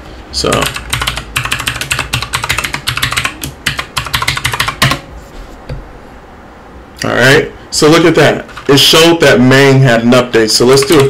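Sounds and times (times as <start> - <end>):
computer keyboard typing: 0.4 - 5.1, 10.7 - 11.0.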